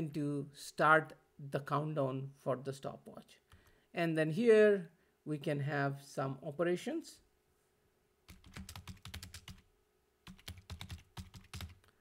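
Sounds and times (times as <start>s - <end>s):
computer keyboard typing: 8.3s - 11.9s.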